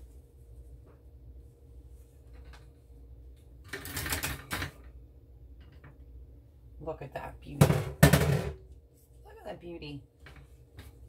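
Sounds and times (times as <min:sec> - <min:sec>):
loud clatter of pan: 0:07.6 - 0:08.6.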